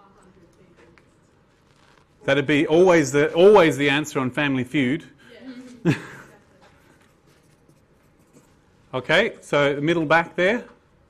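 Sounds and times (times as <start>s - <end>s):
pencil scratching on paper: 7.1s - 8.6s.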